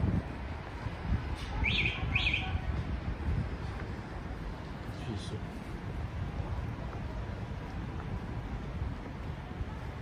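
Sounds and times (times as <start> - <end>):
low street rumble: 0.0 - 10.0
wind buffeting microphone: 0.0 - 10.0.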